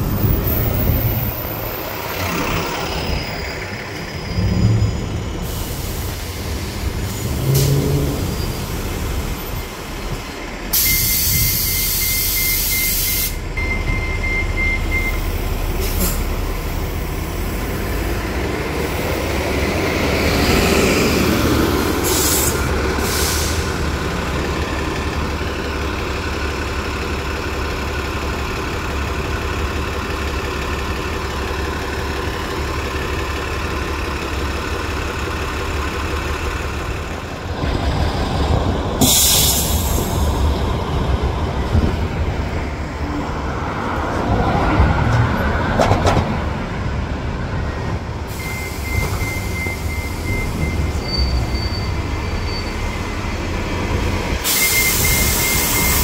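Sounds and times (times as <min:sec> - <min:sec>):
bus pulling by: 0:00.0 - 0:56.0
buses idling: 0:00.0 - 0:56.0
air brake hiss: 0:05.4 - 0:07.8, 0:10.7 - 0:13.4, 0:15.8 - 0:16.3, 0:21.9 - 0:23.8, 0:39.0 - 0:40.3, 0:48.3 - 0:50.0, 0:54.4 - 0:56.0.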